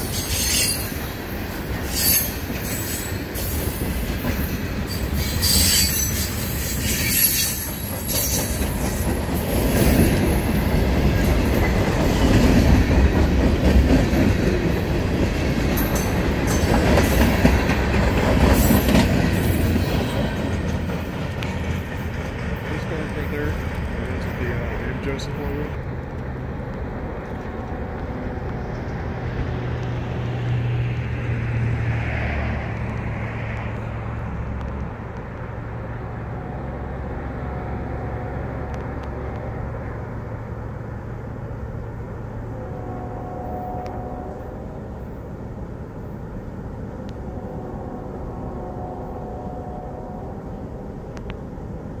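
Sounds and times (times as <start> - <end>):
freight train rumbling on rails: 0.0 - 52.0.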